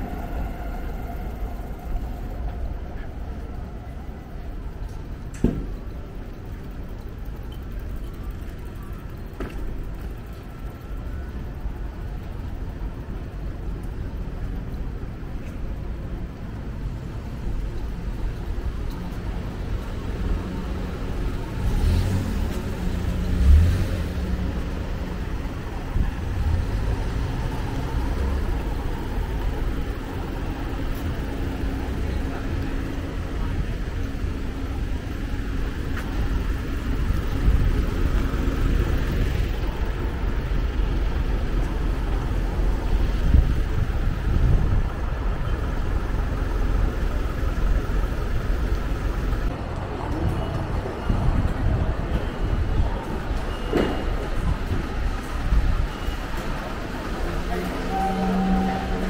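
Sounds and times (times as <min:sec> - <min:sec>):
road traffic and engines: 0:00.0 - 0:59.0
indistinct voices: 0:24.0 - 0:59.0.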